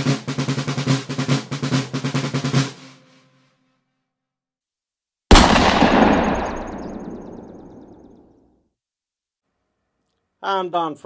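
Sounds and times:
loud boom with rattle: 5.3 - 8.2.

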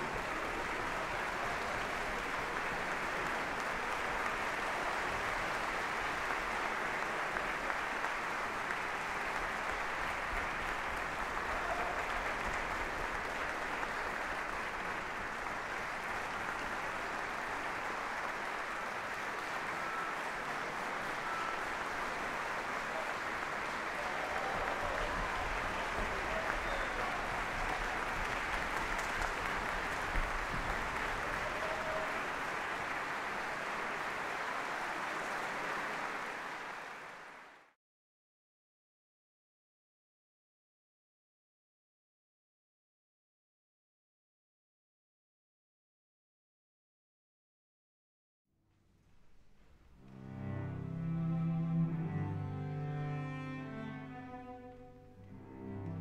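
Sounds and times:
audience applauding: 0.0 - 37.8, 50.0 - 56.0.

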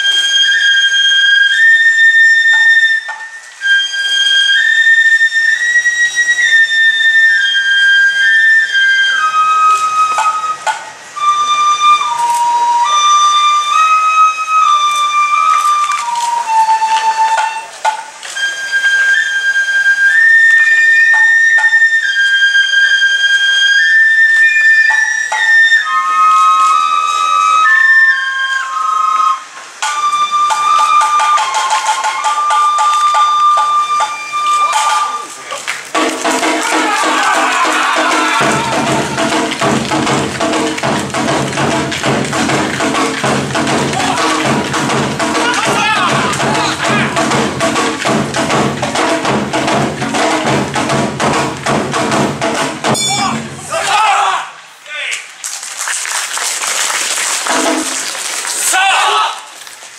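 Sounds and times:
festival music: 0.0 - 54.2
bamboo flute melody: 0.0 - 54.7
percussion strikes: 9.9 - 19.4, 24.8 - 25.8, 29.8 - 54.0, 57.4 - 58.7.

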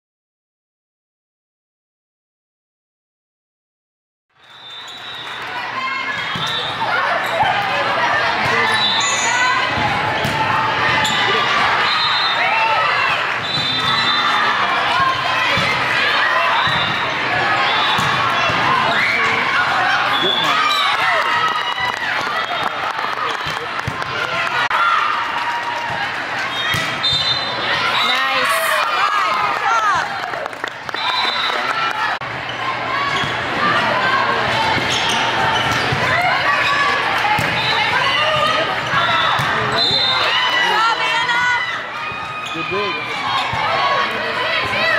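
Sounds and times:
players and spectators chattering: 4.4 - 44.9.

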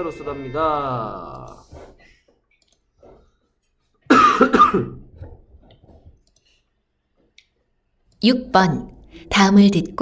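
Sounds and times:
person coughing: 4.1 - 5.2.

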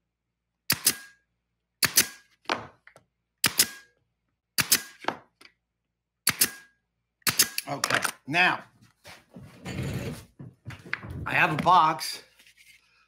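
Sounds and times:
pneumatic stapler firing: 0.7 - 1.2, 1.8 - 2.2, 3.4 - 3.9, 4.6 - 5.1, 6.3 - 7.7.

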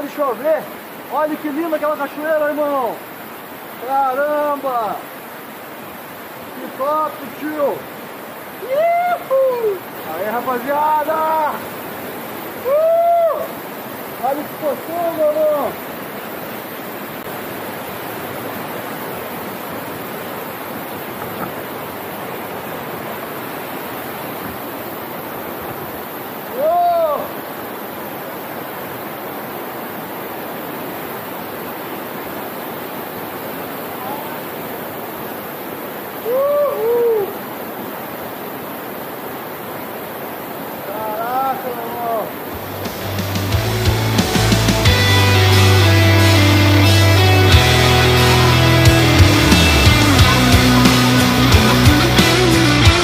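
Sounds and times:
waterfall rushing over rocks: 0.0 - 53.0
whooping shouts: 8.6 - 9.8, 12.6 - 13.6, 26.5 - 27.3, 36.2 - 37.4
rock music: 42.6 - 53.0.

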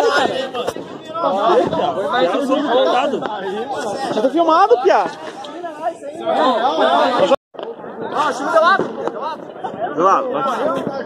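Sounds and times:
people talking over one another: 0.0 - 11.0.

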